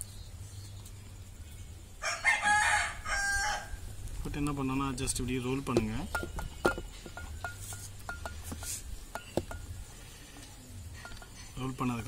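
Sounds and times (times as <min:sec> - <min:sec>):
steady low hum: 0:02.9 - 0:12.0
metal ring clinking on steel plate: 0:06.0 - 0:10.0, 0:10.9 - 0:12.0.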